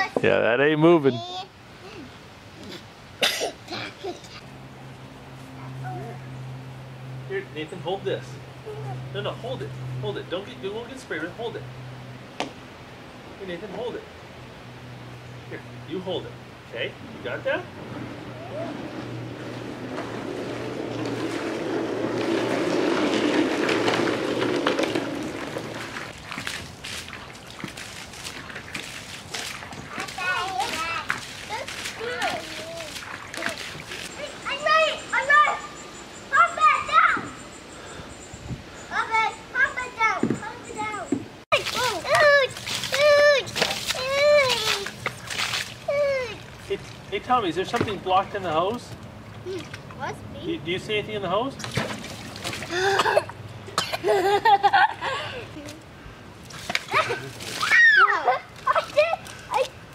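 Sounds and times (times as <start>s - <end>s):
person coughing: 3.2s - 4.1s, 52.7s - 54.2s
water splashes: 17.6s - 37.2s, 41.5s - 53.2s, 55.6s - 59.9s
hose water running into kayak hull: 19.4s - 34.1s, 41.5s - 47.2s.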